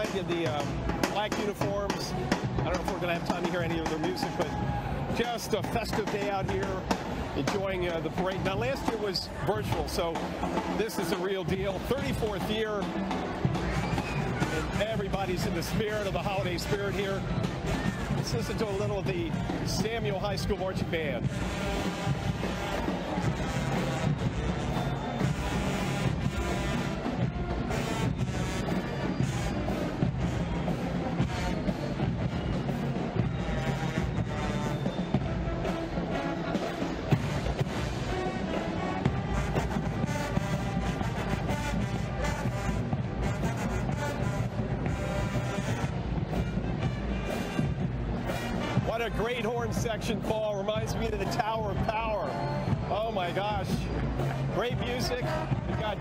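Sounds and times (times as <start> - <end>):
brass horn section playing: 10.2 - 49.9, 54.2 - 56.0.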